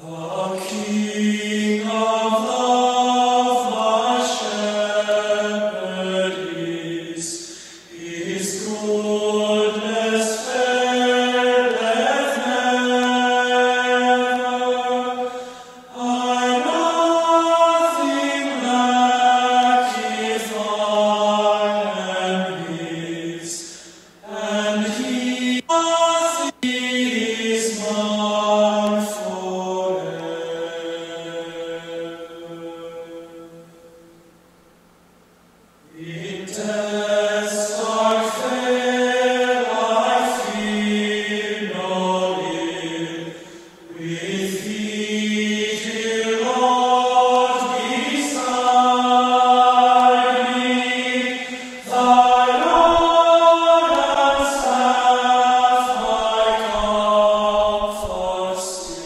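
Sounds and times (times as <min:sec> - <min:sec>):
hymn sung slowly: 0:00.0 - 0:59.0.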